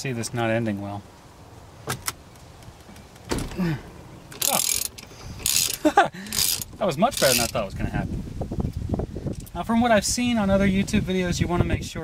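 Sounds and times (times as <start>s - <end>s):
person grunting: 3.5s - 3.9s
ratchet clicking: 4.3s - 7.6s.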